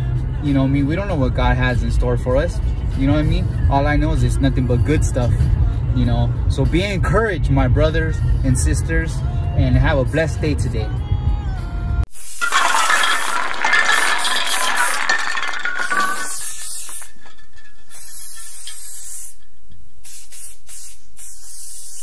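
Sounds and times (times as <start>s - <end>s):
steady hiss: 12.1s - 22.0s.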